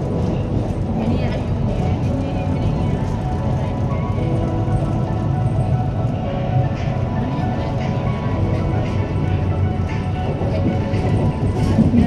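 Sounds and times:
train low rumble: 0:00.0 - 0:12.0.

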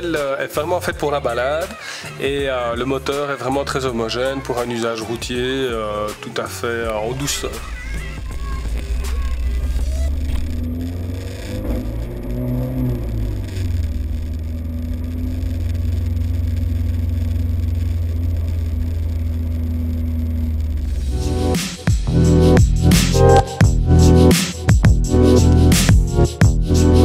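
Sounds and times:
car engine from inside cabin: 0:07.7 - 0:21.5.

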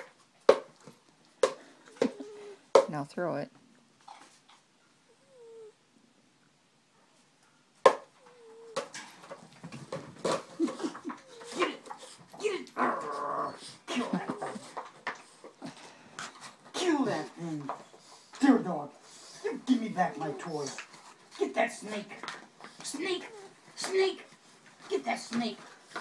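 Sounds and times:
dog growling and whining: 0:01.8 - 0:02.7, 0:05.1 - 0:05.9, 0:08.0 - 0:15.8, 0:19.3 - 0:20.9, 0:22.8 - 0:24.0.

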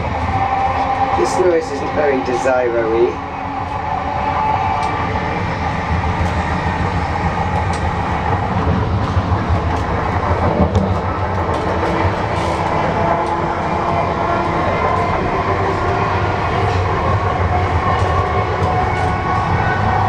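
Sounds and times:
train wheels rumbling on track: 0:00.0 - 0:20.0.

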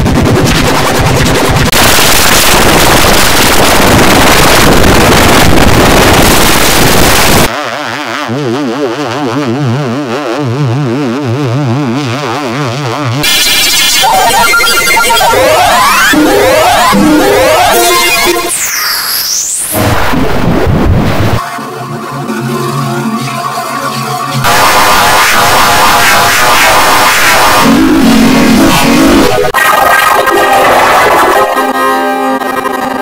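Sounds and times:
rising distorted sweeps: 0:00.0 - 0:07.5, 0:12.8 - 0:33.0
harsh distorted noise: 0:00.0 - 0:33.0
warbling tone with fast vibrato: 0:13.2 - 0:19.7.

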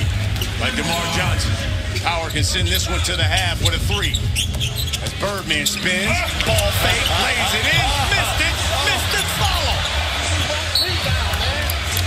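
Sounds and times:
voices and crowd noise: 0:00.0 - 0:12.0.

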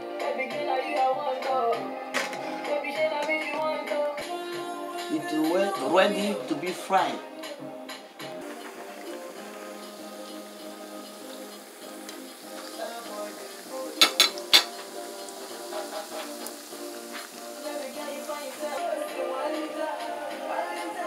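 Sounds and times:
background music: 0:00.0 - 0:21.0
oil sizzling in a pan: 0:07.9 - 0:21.0
utensil knocking against pan: 0:14.0 - 0:14.8.

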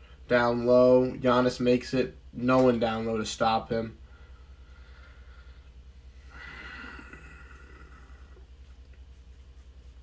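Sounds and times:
low steady hum: 0:00.0 - 0:10.0
soft rush of noise: 0:00.0 - 0:10.0.

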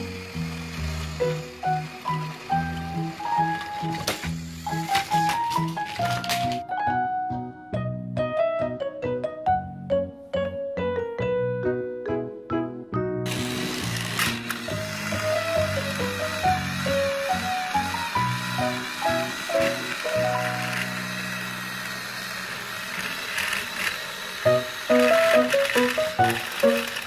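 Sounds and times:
toy train motors whirring: 0:00.0 - 0:06.6, 0:13.3 - 0:27.0
bouncy plucked background music: 0:05.0 - 0:13.3.

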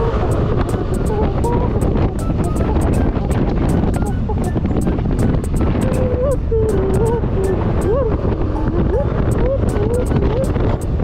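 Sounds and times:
background music with ticking beat: 0:00.0 - 0:08.0, 0:09.2 - 0:11.0
motorcycle road noise: 0:00.0 - 0:11.0
wind rushing: 0:00.0 - 0:11.0.

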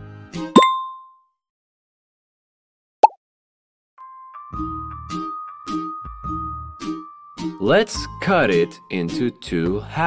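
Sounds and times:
cartoon pop and bell ding: 0:00.5 - 0:01.2
light background music: 0:04.0 - 0:10.0.

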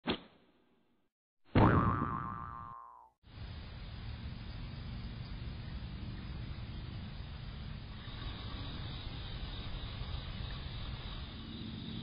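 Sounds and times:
cartoon boing: 0:01.5 - 0:03.1
steady outdoor hiss: 0:03.3 - 0:12.0.

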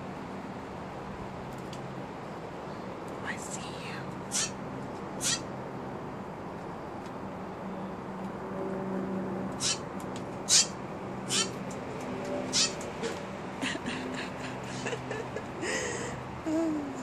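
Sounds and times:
jay scratchy calls: 0:04.3 - 0:04.6, 0:05.2 - 0:05.5, 0:09.6 - 0:09.9, 0:10.5 - 0:11.6, 0:12.5 - 0:12.9.

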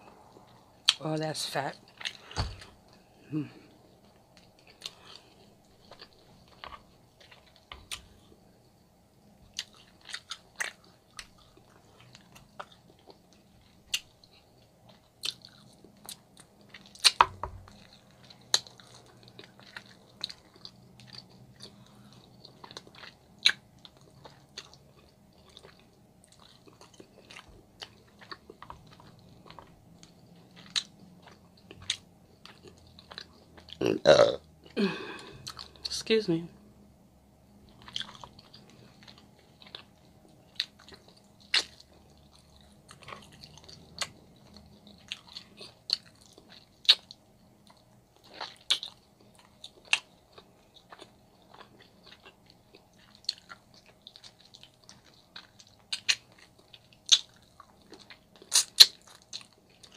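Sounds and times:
chewing and biting meat: 0:09.5 - 0:33.8, 0:37.7 - 0:59.9.

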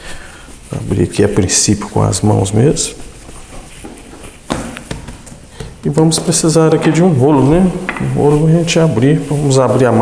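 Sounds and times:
hands patting dough: 0:02.8 - 0:10.0.

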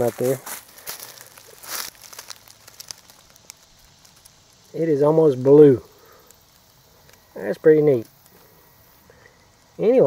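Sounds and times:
dry leaves rustling and crackling: 0:00.0 - 0:10.0.

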